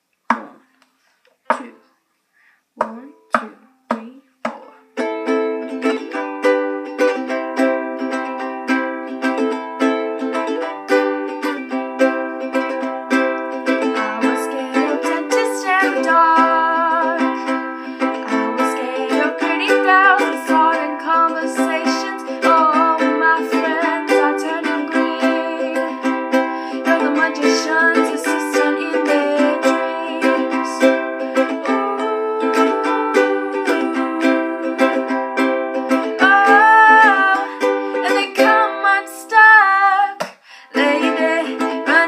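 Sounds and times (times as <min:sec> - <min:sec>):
ukulele strumming: 0:00.3 - 0:00.7, 0:02.8 - 0:42.0
girl singing: 0:02.8 - 0:42.0.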